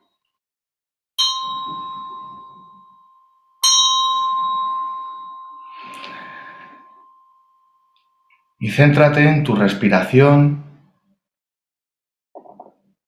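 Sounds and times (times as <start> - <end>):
handheld metal bell ringing: 1.2 - 8.3.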